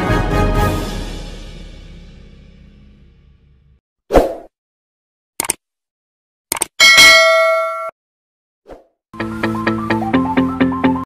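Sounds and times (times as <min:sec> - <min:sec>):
bell ding sound effect: 0:06.8 - 0:08.0.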